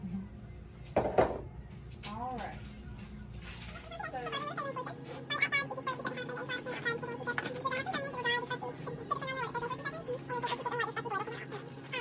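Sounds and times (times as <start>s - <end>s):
soft background music: 0.0s - 12.0s
woman talking: 2.0s - 2.7s, 3.8s - 11.6s.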